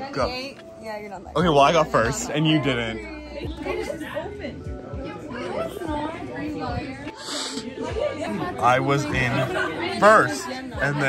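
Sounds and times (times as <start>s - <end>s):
background music: 0.0s - 11.0s
students talking: 0.0s - 11.0s.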